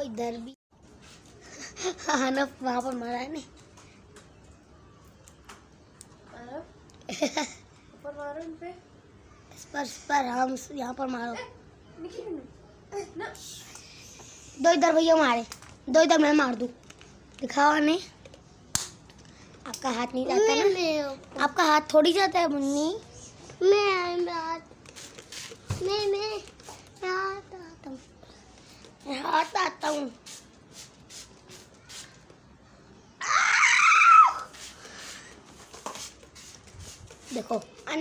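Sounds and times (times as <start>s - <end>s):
sharp snap: 18.7s - 19.0s
spray bottle spritzing: 24.8s - 26.9s, 29.4s - 32.3s, 34.0s - 37.8s
child calling out: 33.2s - 34.5s.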